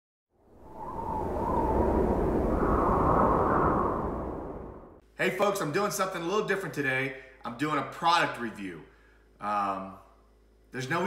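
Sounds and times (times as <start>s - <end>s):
rushing whoosh: 0.5s - 5.0s.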